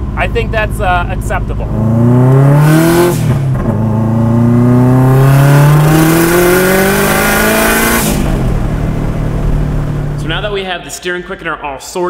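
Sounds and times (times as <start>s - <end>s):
turbocharged engine accelerating: 0.0s - 10.6s.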